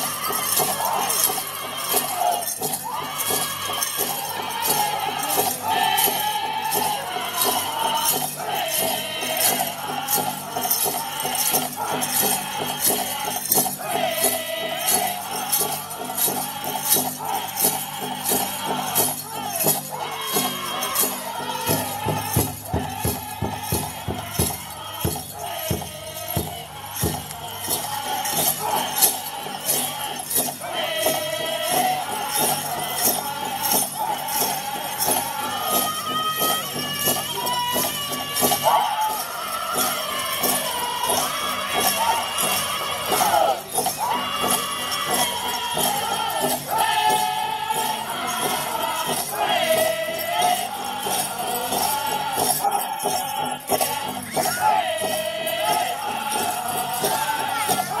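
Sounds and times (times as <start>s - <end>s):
large drum steady beat: 0.0s - 35.6s
group singing high: 0.0s - 58.0s
jingling bells: 0.0s - 58.0s
big drum beating: 21.6s - 28.5s.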